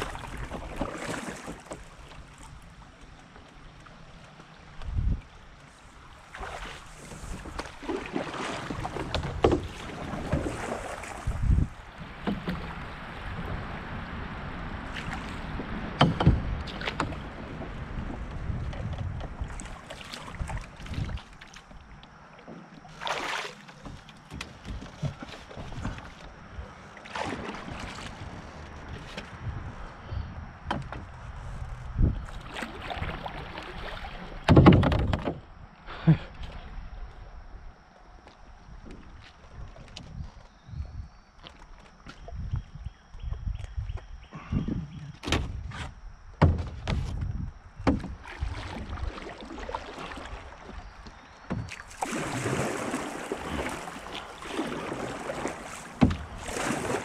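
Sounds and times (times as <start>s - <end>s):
water sloshing and splashing: 0.0s - 35.8s, 36.4s - 44.1s, 44.9s - 57.0s
knocks on canoe hull: 8.7s - 10.7s, 16.0s - 17.5s, 34.4s - 35.4s, 46.3s - 48.4s, 51.4s - 57.0s.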